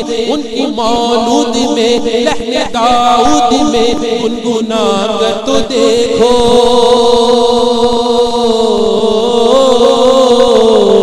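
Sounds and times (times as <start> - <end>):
person singing devotional song: 0.0 - 11.0.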